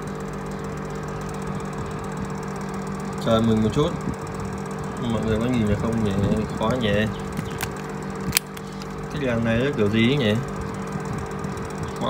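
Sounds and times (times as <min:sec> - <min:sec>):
low machine hum: 0:00.0 - 0:12.0
sharp clicks: 0:06.7 - 0:09.0.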